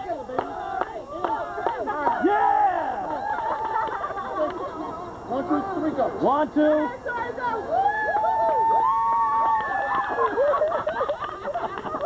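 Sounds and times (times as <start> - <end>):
group of voices talking and calling: 0.0 - 12.0.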